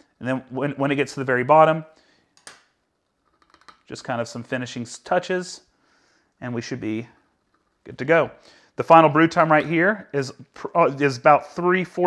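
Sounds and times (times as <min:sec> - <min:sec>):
person talking: 0:00.2 - 0:01.9, 0:03.9 - 0:05.6, 0:06.4 - 0:07.2, 0:07.8 - 0:12.0.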